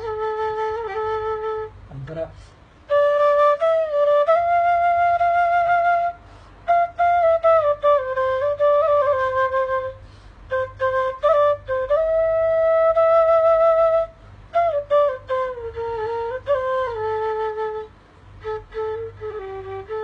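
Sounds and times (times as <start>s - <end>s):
flute playing slow melody: 0.0s - 1.9s, 2.9s - 20.0s.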